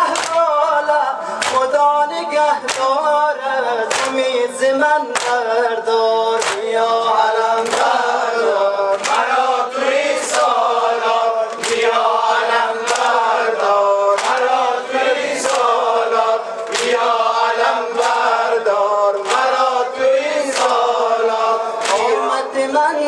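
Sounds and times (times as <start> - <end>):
rhythmic hand strikes: 0.0 - 22.6
man chanting into a microphone: 0.0 - 23.0
voices joining in chant: 0.0 - 23.0.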